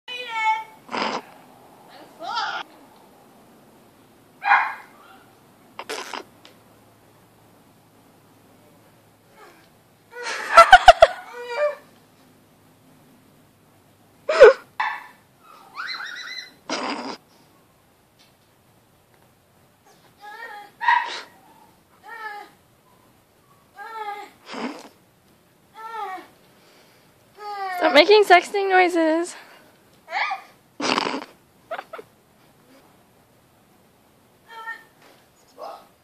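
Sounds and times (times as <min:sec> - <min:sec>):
woman yelping: 0:02.2 - 0:02.7, 0:20.2 - 0:21.4, 0:30.1 - 0:30.6, 0:34.5 - 0:34.9
person squealing with strain: 0:15.6 - 0:17.2.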